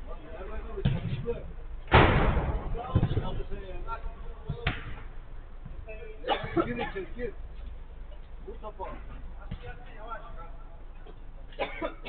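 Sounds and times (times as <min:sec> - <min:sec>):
football thuds: 0:00.7 - 0:03.8, 0:04.4 - 0:06.8, 0:09.1 - 0:09.9.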